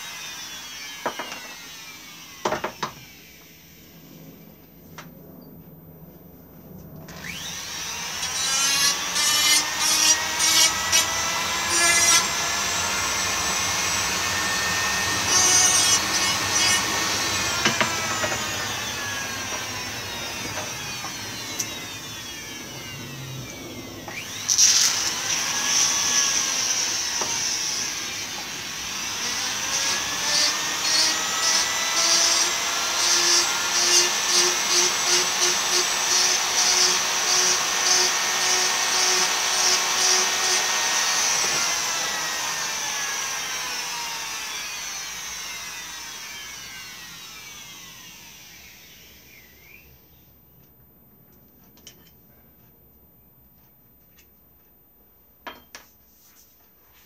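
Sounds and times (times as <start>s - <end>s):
power tool motor working wood: 0.0s - 4.1s, 7.1s - 49.8s.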